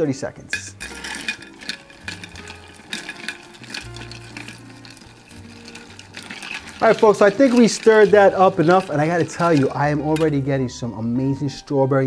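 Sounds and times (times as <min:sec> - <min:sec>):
spoon stirring ice in a glass: 0:00.5 - 0:10.4.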